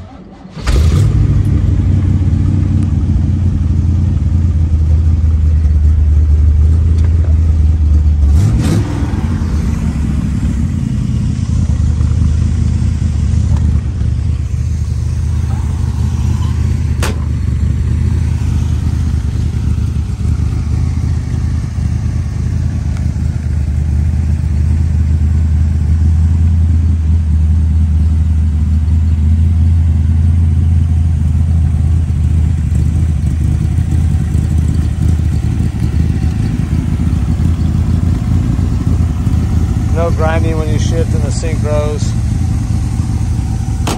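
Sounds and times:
car engine idling: 0.0 - 43.9.

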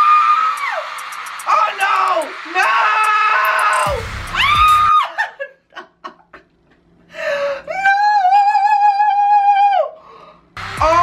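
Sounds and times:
music: 0.6 - 2.3, 3.5 - 4.9, 10.6 - 11.0
man screaming with excitement: 1.5 - 5.2.

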